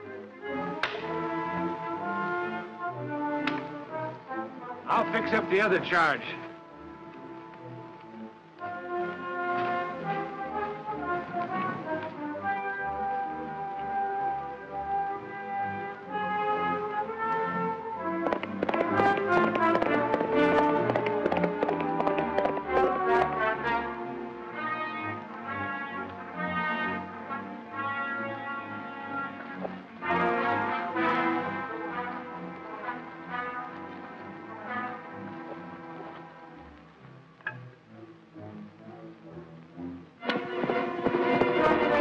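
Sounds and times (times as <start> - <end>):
film score music with brass: 0.0 - 42.0.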